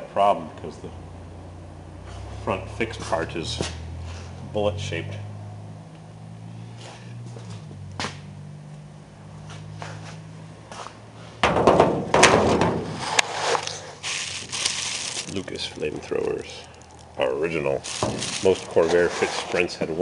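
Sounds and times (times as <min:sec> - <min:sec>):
wrapping rustling and crinkling: 0:13.5 - 0:19.6
low steady hum: 0:14.0 - 0:18.8.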